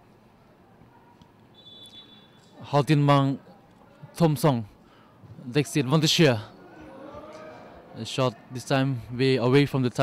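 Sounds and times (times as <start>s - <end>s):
faint stadium ambience: 0.0s - 10.0s
referee whistle blast: 1.5s - 2.4s.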